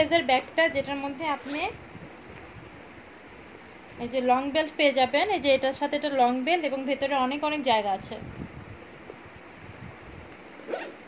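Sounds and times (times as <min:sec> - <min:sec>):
handbag zipper being pulled: 0:01.3 - 0:01.8, 0:10.5 - 0:11.0.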